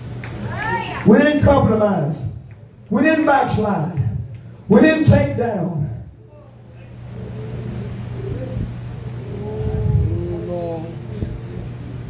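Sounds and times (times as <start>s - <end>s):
low room hum: 0.0s - 12.0s
congregation voices: 2.9s - 12.0s.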